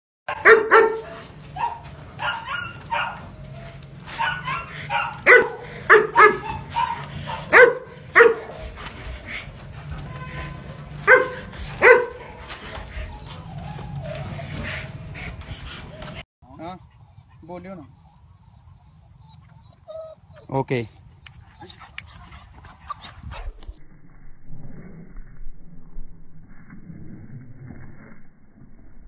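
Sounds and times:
dog barking: 0.3 - 3.3, 4.1 - 8.6, 11.0 - 12.4.

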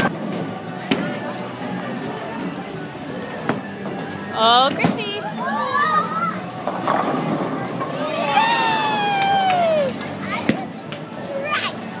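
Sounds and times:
crowd hubbub: 0.0 - 12.0
child cheering shout: 8.3 - 10.0.

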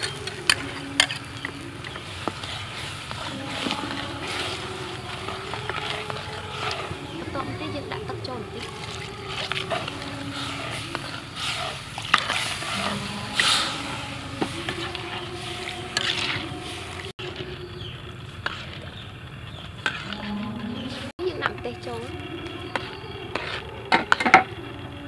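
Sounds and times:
sauce sizzling in a wok: 0.0 - 24.8.

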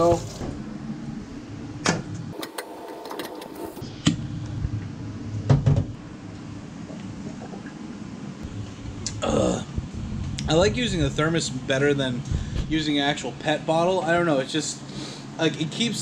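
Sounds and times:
low hum: 0.0 - 2.3, 3.5 - 13.4.

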